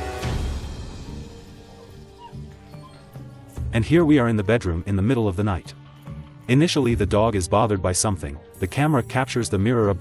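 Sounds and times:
background music: 0:00.0 - 0:10.0
dog whimpering: 0:01.6 - 0:03.6.

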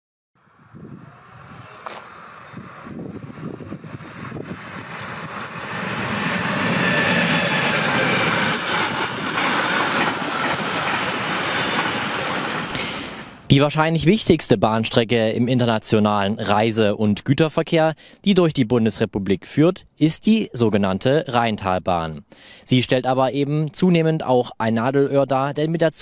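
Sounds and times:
freight train wheels rumbling: 0:01.0 - 0:13.5.

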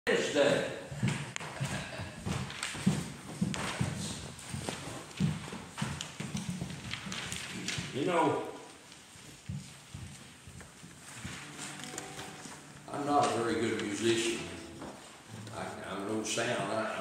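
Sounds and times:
footsteps on wooden floor: 0:00.8 - 0:16.1.

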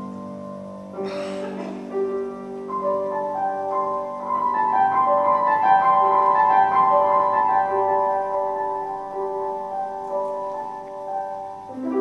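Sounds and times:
grand piano single notes: 0:00.0 - 0:12.0.

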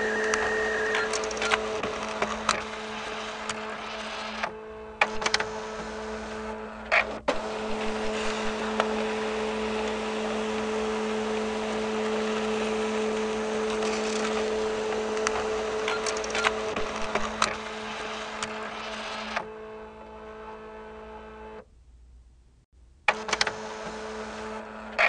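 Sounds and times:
machine humming: 0:00.0 - 0:21.6
sharp clicks: 0:00.2 - 0:01.6.

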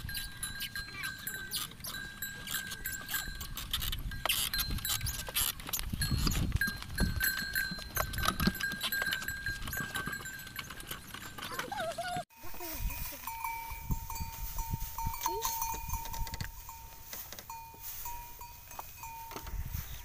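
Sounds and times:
thin high squeak: 0:00.0 - 0:06.5
wooden cart knocking and clattering: 0:00.4 - 0:12.2.

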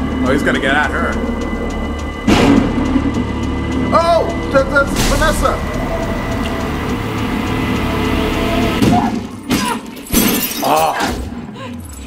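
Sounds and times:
tense music: 0:00.0 - 0:12.0.

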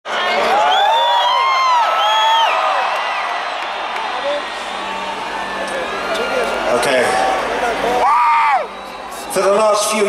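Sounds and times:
concert crowd cheering and whooping: 0:00.1 - 0:10.0.

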